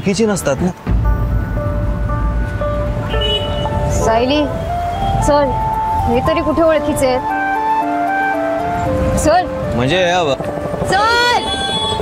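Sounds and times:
held melodic music notes: 0:00.9 - 0:11.2.

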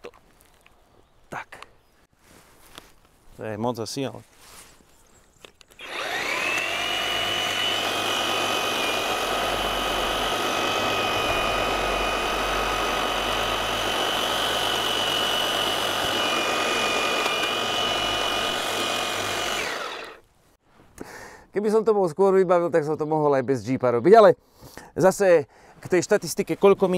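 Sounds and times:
electric hedge trimmer whining: 0:05.8 - 0:20.2.

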